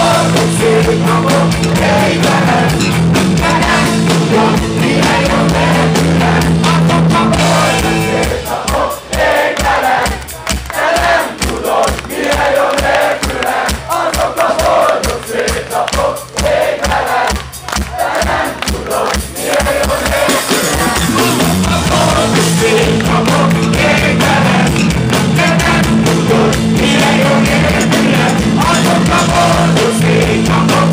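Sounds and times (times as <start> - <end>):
audience singing along: 0.0 - 30.9
live rock band: 0.0 - 30.9.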